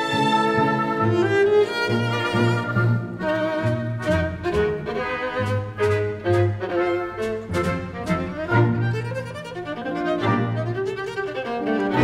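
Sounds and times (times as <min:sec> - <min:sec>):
viola with symphony orchestra: 0:00.0 - 0:12.0.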